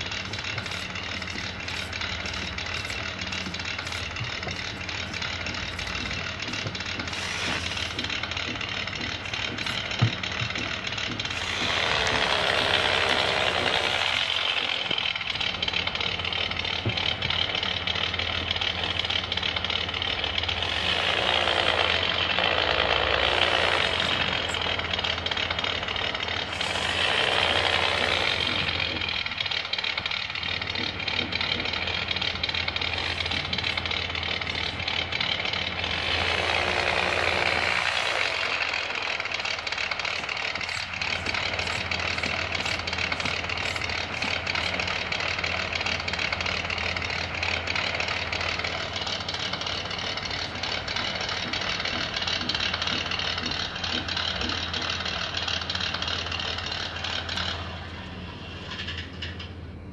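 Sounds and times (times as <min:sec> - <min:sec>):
small electric motor whining: 0:00.0 - 0:58.9
steady low hum: 0:00.0 - 0:59.9.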